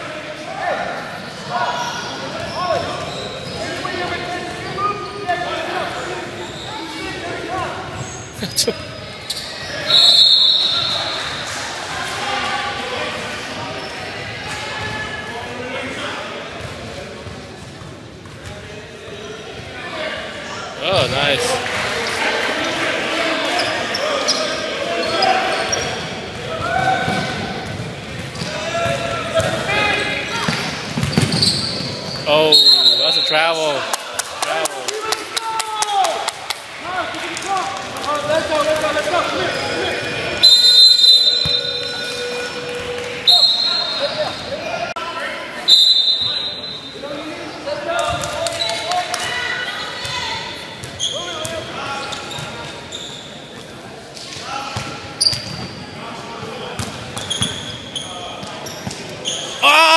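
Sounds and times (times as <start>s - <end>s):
sneaker squeaks: 1.0s - 5.4s, 6.2s - 11.4s, 13.6s - 14.2s, 23.4s - 33.5s, 39.5s - 44.7s, 49.7s - 56.0s, 56.6s - 59.6s
echoing voices: 58.1s - 59.9s.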